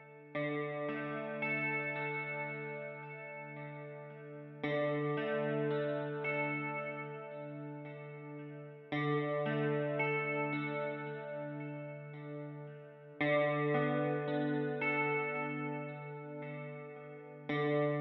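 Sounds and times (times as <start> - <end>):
slow instrumental music chords: 0.0 - 18.0.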